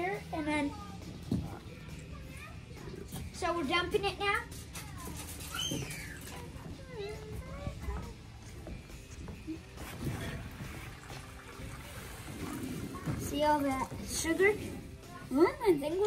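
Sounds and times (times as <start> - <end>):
liquid pouring and trickling: 9.7 - 15.1.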